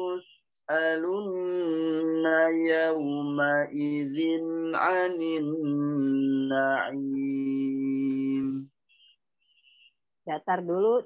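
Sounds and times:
man chanting a recitation: 0.0s - 8.8s.

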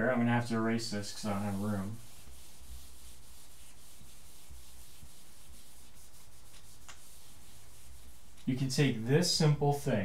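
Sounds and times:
eraser scrubbing a whiteboard: 0.4s - 9.6s.

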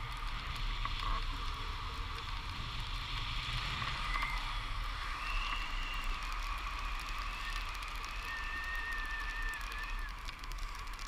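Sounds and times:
thin whistling tones: 5.0s - 6.3s.

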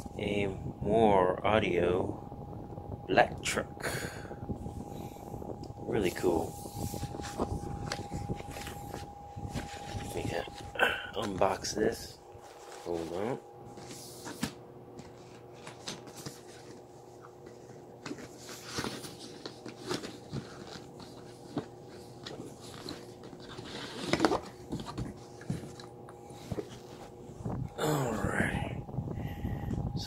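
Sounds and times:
faint steady hum: 0.0s - 30.0s
box unpacking clicks and rustles: 6.1s - 26.9s.

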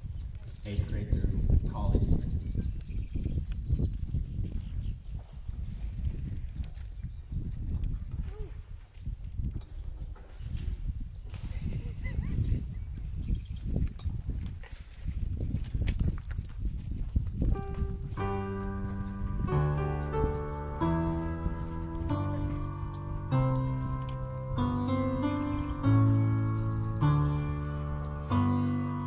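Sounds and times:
wind buffeting microphone: 0.0s - 29.0s
music with held notes: 17.6s - 29.0s.

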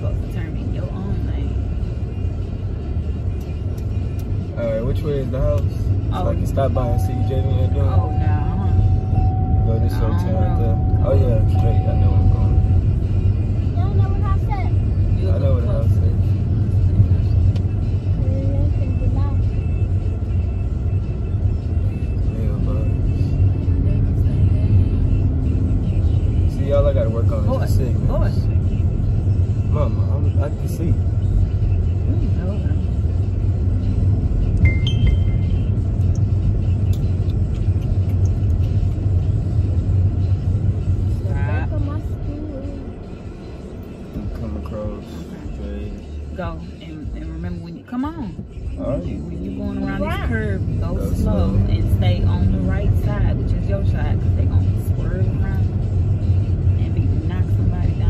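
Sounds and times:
car road and engine rumble: 0.0s - 58.0s.

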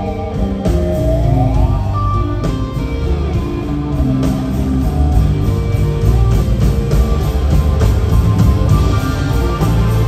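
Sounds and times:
drums: 0.0s - 10.0s
low bass: 0.0s - 10.0s.

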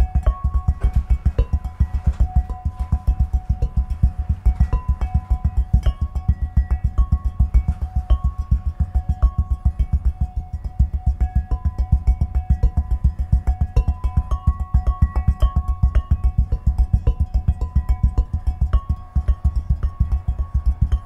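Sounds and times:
low thumps on glasses: 0.0s - 21.0s
ringing glass tones: 0.0s - 21.0s.

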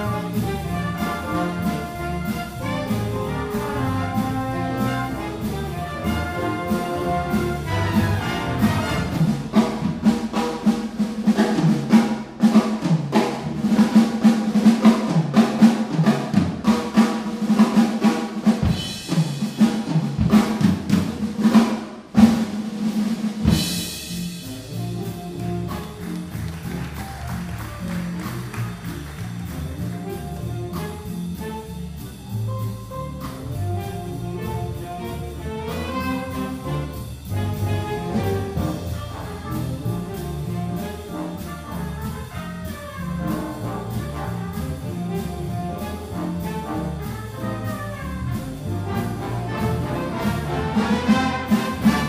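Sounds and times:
big band playing jazz: 0.0s - 52.0s
busy drum kit: 0.0s - 52.0s.

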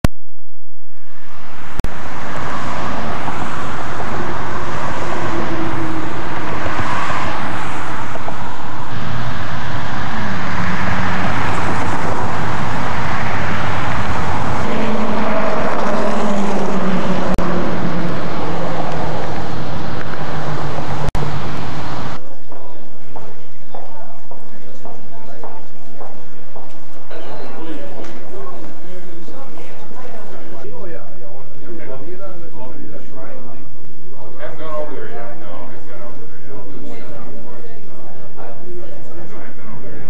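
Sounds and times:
road traffic hum: 0.9s - 40.0s.

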